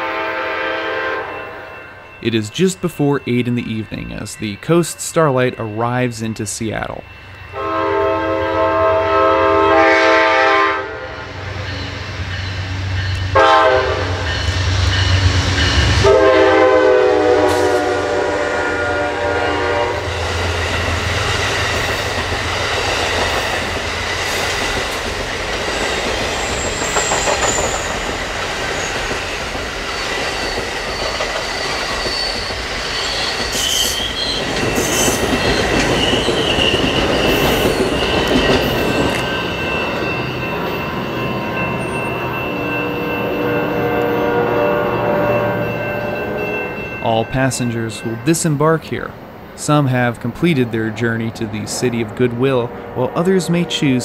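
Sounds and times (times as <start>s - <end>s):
train horn blasts: 0.0s - 1.8s, 7.5s - 11.3s, 13.3s - 14.3s, 16.0s - 20.1s, 42.6s - 46.6s, 53.0s - 54.0s
train wheels rumbling and clattering: 11.2s - 54.0s
high wheel squeals: 25.7s - 48.1s.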